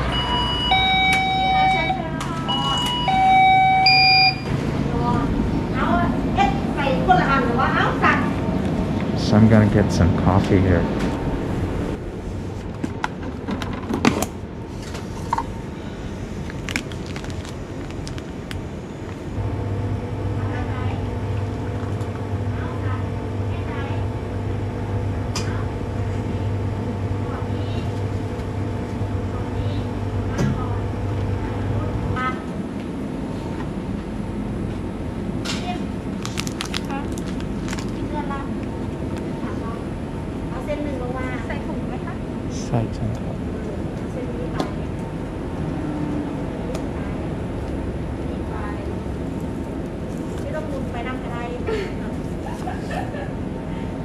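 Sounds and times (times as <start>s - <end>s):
coffee machine humming: 0.0s - 13.8s, 14.6s - 54.0s.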